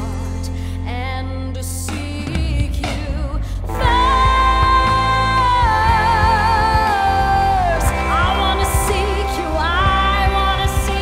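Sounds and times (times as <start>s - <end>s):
bass guitar: 0.0s - 11.0s
drums: 0.0s - 11.0s
woman singing: 0.0s - 11.0s.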